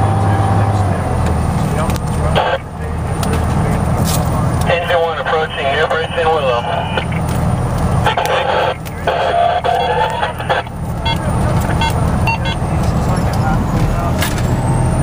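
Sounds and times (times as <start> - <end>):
truck engine and road rumble: 0.0 - 15.0
garbled radio traffic: 0.5 - 14.2
short beeps: 11.0 - 12.7.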